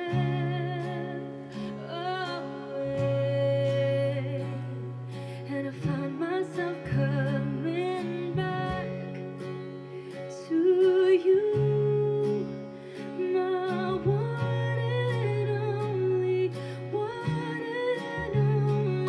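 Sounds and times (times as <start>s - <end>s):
acoustic guitar: 0.0s - 19.0s
woman singing a ballad: 0.0s - 19.0s.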